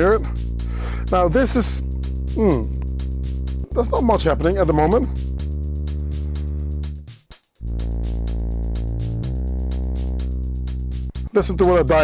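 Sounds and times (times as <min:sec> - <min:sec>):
fast high ticking: 0:00.0 - 0:12.0
synthesizer bass line: 0:00.0 - 0:12.0.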